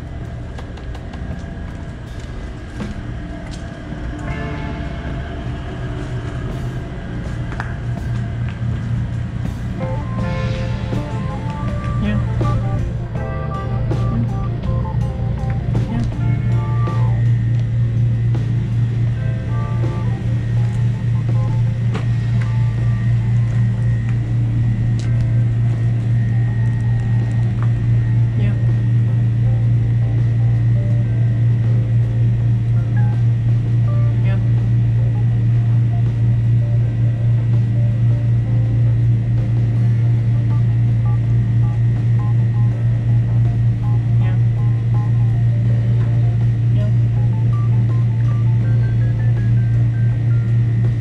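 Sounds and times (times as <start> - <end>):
faint music: 0.0 - 51.0
loud low hum: 0.0 - 51.0.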